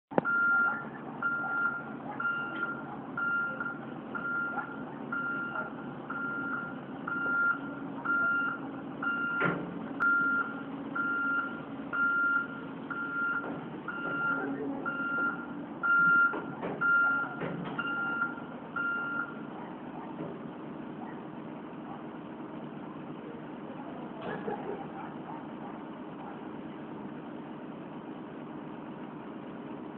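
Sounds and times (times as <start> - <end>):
diesel engine running: 0.1 - 29.9
vehicle warning alarm beeping: 0.2 - 20.1.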